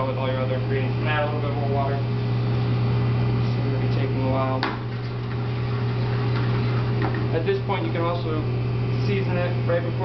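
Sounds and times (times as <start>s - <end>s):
kitchen equipment humming: 0.0s - 10.0s.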